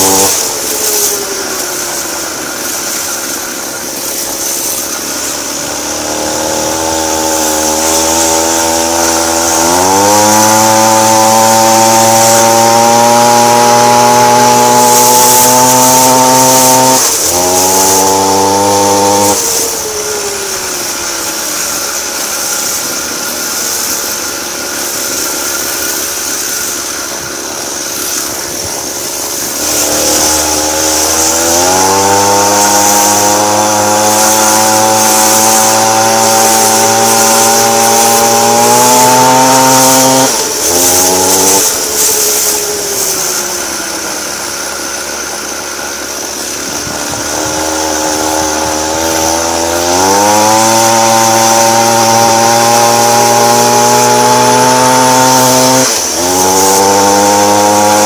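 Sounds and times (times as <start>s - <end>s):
small engine revving: 0.0s - 58.0s.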